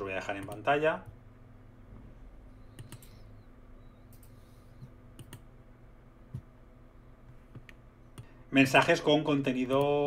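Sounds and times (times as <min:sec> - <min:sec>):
faint steady hum: 0:00.0 - 0:10.0
computer keyboard clicks: 0:02.7 - 0:03.2, 0:05.2 - 0:05.5.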